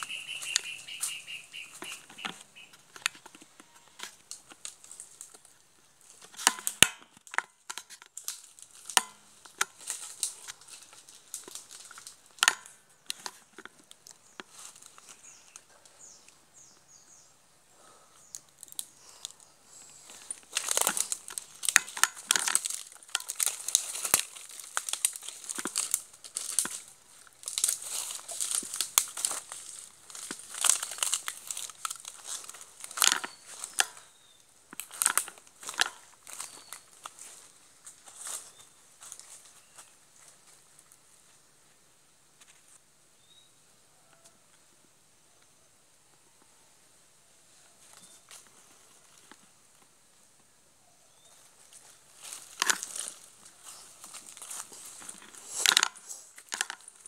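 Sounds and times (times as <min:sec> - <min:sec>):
footsteps crunching dry fronds: 0:00.0 - 0:16.2, 0:18.4 - 0:41.4, 0:51.2 - 0:57.0.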